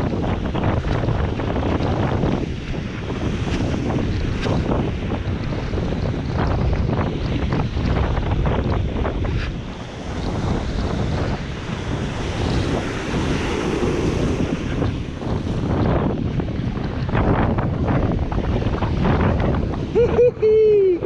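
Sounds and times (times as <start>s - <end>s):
surf washing on sand: 0.0s - 21.0s
wind buffeting microphone: 0.0s - 21.0s.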